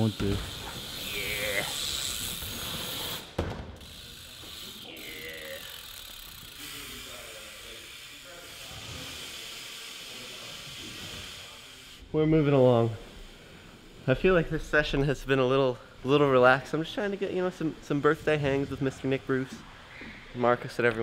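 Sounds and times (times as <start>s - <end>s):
bike tyres rolling on concrete: 0.0s - 15.3s.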